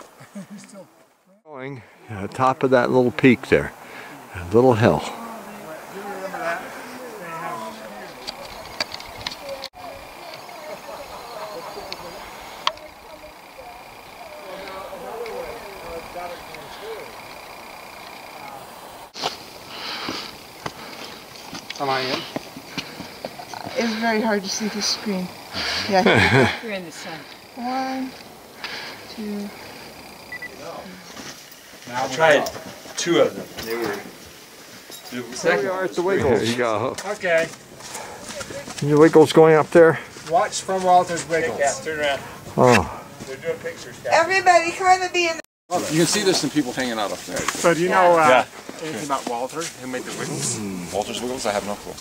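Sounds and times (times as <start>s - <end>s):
distant group talking: 0.0s - 52.0s
faint voices: 1.5s - 31.2s, 45.8s - 52.0s
high electronic camera beeps: 30.3s - 30.6s.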